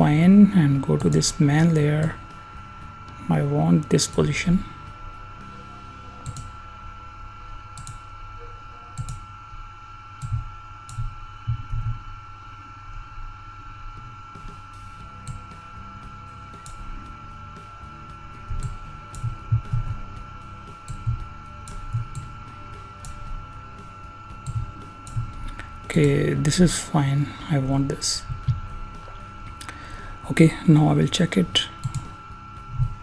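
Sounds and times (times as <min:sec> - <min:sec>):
high-pitched electrical whine: 0:00.0 - 0:33.0.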